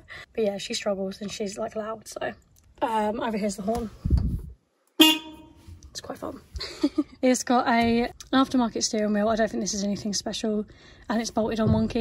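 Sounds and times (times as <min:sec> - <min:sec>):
car horn: 0:05.0 - 0:05.6.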